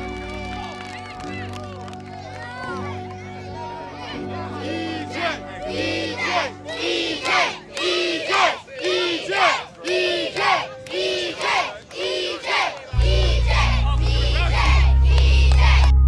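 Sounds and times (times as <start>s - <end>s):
faint background music: 0.0s - 16.0s
children chanting in unison: 3.6s - 15.8s
deep bass music: 13.0s - 16.0s.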